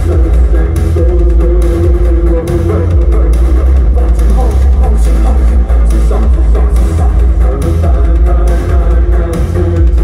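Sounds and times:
synth bass and beat: 0.0 - 10.0.

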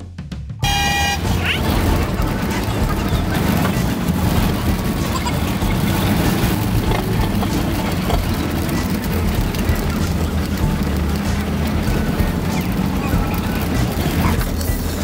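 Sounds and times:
bus engine and road rumble: 0.0 - 15.0.

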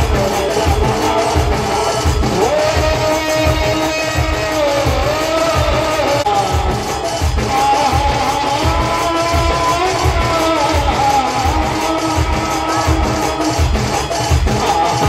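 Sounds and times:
heavy drum beat: 0.0 - 15.0
held melody line: 0.0 - 15.0.

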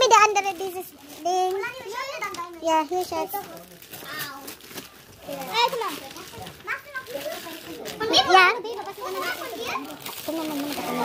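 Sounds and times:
children calling excitedly: 0.0 - 11.0.

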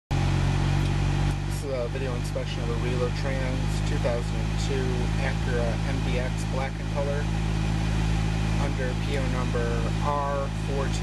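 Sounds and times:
car engine idling: 0.1 - 11.0
man talking: 1.3 - 7.3, 8.6 - 11.0.

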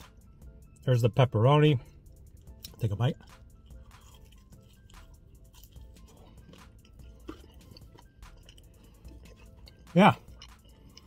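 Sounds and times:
quiet background music: 0.0 - 11.0
chewing with wet mouth clicks: 2.2 - 11.0.

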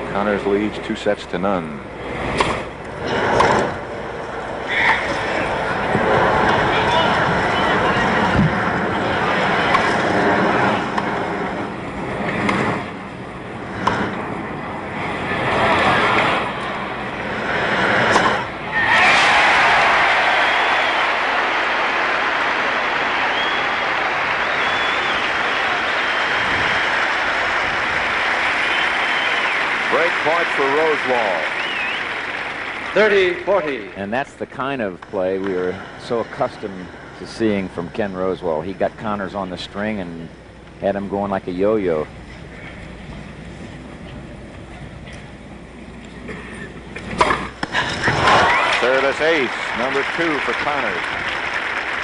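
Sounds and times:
murmur of stadium crowd: 0.0 - 52.0
crowd applause and cheering: 4.6 - 11.7, 17.2 - 34.1, 47.6 - 52.0
crowd whistles: 18.7 - 33.0, 48.0 - 50.1.

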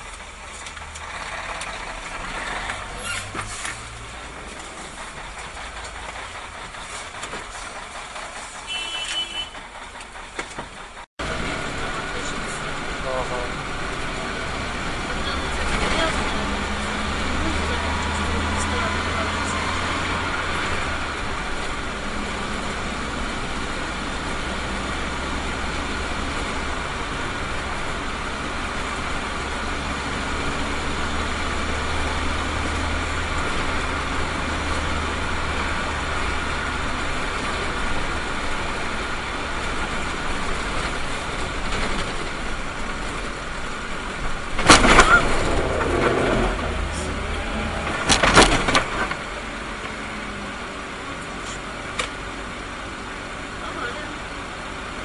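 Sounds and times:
rattling clatter: 0.0 - 11.1, 37.0 - 49.4
engine and road noise: 0.0 - 55.0
low engine hum: 0.0 - 55.0.

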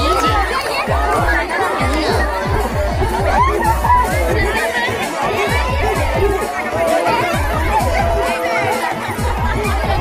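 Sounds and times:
quick steady drumbeat: 0.0 - 10.0
voices chattering and calling: 0.0 - 10.0.

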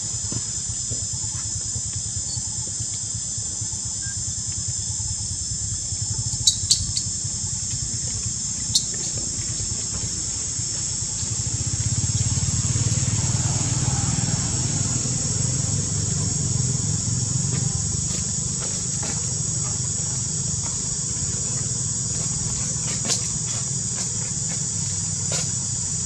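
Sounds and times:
high insect drone: 0.0 - 26.0.

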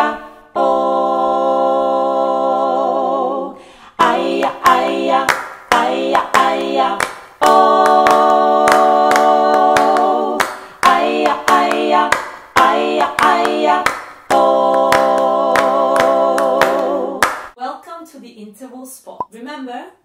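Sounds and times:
a cappella vocal harmony: 0.0 - 17.6
hand claps: 5.3 - 17.6.

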